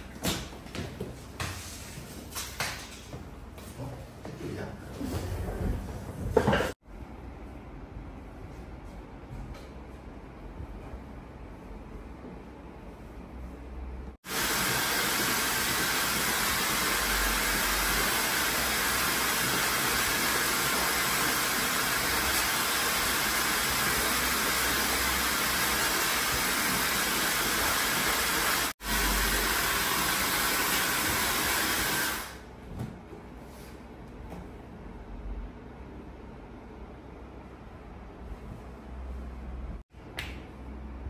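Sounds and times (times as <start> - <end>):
hair dryer blowing: 14.2 - 32.4.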